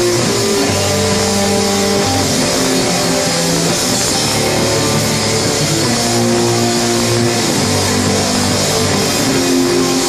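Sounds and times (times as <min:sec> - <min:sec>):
bass guitar: 0:00.0 - 0:10.0
drums with cymbal wash: 0:00.0 - 0:10.0
electric guitars: 0:00.0 - 0:10.0.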